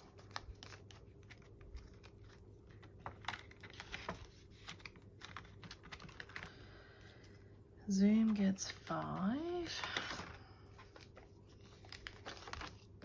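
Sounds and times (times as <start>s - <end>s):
banknotes and plastic sleeves rustling: 0.0s - 13.0s.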